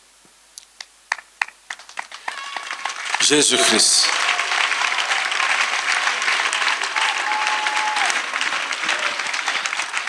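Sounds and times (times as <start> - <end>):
crowd clapping: 1.1 - 10.0.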